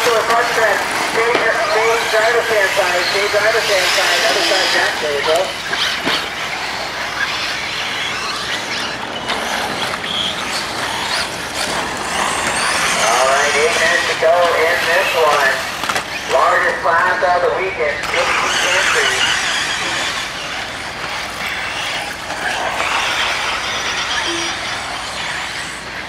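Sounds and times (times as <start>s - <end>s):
announcer speaking: 0.0s - 5.6s, 13.0s - 20.1s
rc car motors whining: 0.0s - 26.0s.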